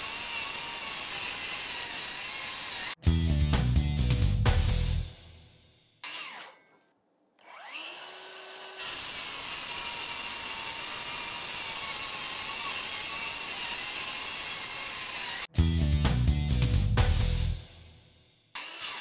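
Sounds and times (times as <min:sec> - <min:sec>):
circular saw cutting boards: 0:00.0 - 0:03.0, 0:06.0 - 0:06.8, 0:07.4 - 0:15.6, 0:18.5 - 0:19.0.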